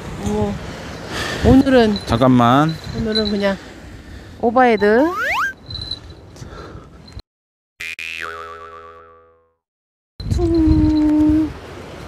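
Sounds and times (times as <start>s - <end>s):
steady held tone: 4.9s - 5.6s
cartoon boing sound effect: 5.1s - 5.6s, 7.8s - 9.6s.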